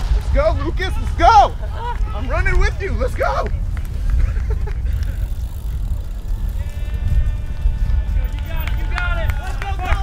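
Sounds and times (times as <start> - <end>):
handling rumble: 0.0 - 10.0
wind on microphone: 0.0 - 10.0.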